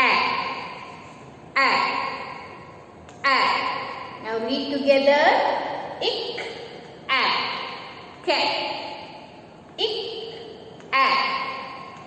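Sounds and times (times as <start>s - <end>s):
woman saying a syllable with echo: 0.0s - 2.6s, 3.2s - 12.0s.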